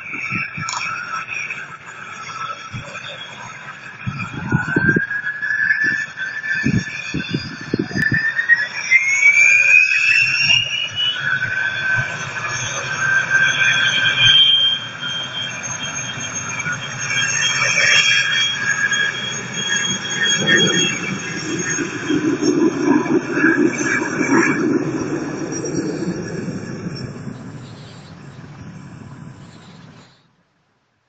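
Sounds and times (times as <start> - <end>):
jet engines spooling up: 0.0 - 30.4
wind thumping on microphone: 0.1 - 0.9, 4.0 - 5.2, 6.6 - 8.3.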